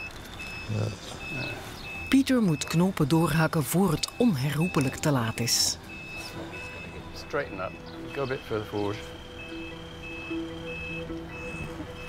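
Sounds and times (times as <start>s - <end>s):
electronic warning beeps: 0.0s - 12.0s
soft background music: 0.5s - 12.0s.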